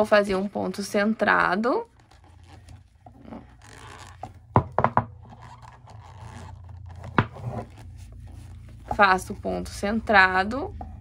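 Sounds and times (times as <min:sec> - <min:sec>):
yarn rubbing and rustling: 0:00.0 - 0:11.0.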